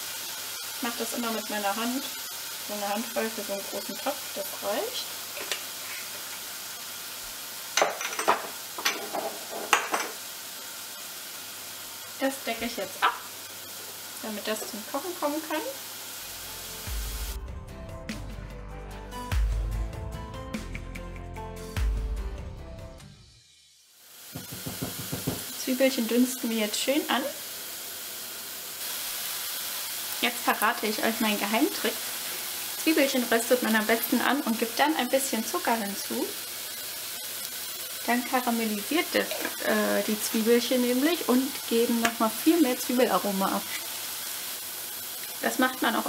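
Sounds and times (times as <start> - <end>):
onion sizzling in hot oil: 0.0 - 17.4, 23.4 - 46.0
sharp knocks and clatters: 24.3 - 25.5.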